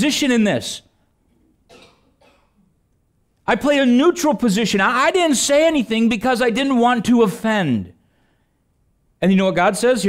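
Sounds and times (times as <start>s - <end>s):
person coughing faintly: 1.7s - 2.7s.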